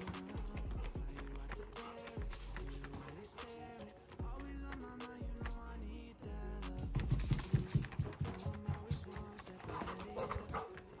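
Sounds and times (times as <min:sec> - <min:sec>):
background music with soft beat: 0:00.0 - 0:11.0
dog vocalizing: 0:09.7 - 0:10.9.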